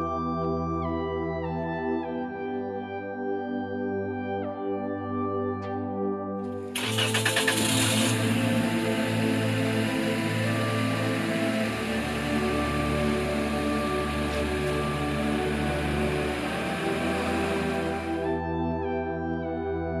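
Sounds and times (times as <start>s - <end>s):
held synthesizer chords: 5.6s - 20.0s.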